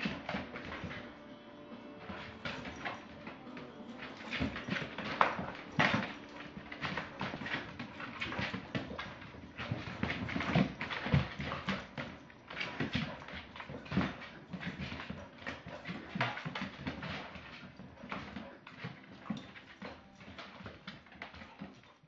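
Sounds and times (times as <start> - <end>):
dog claws clicking on wooden floor: 0.0 - 1.2, 2.0 - 22.0
dog thumps on floor: 2.0 - 3.4, 4.0 - 21.8.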